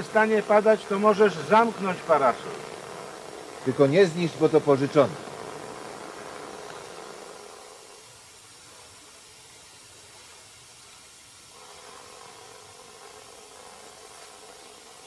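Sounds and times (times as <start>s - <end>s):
faint outdoor hiss: 0.0s - 15.0s.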